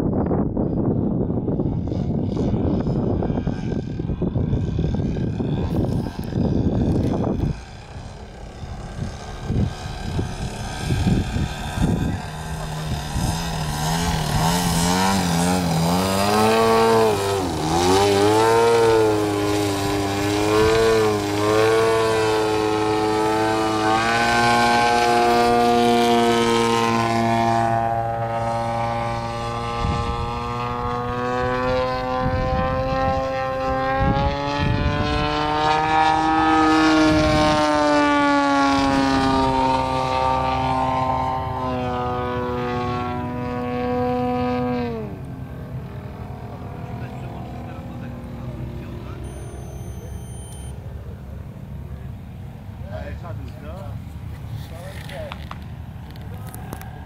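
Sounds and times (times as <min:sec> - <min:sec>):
model plane engine and propeller: 0:00.0 - 0:57.0.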